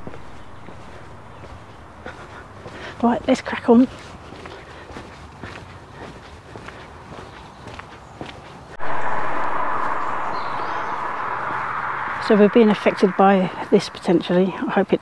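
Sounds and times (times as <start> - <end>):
footsteps on pavement: 0.0 - 8.8
loud rushing noise: 8.8 - 14.7.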